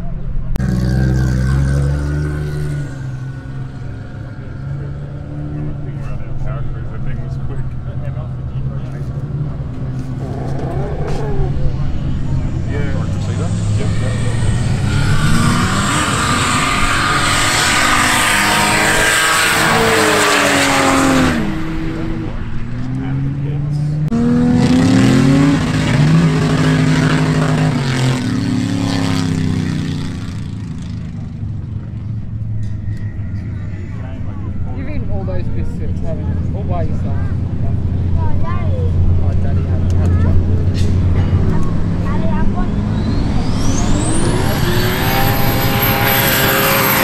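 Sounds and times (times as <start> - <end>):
race car engines revving: 0.0 - 47.0.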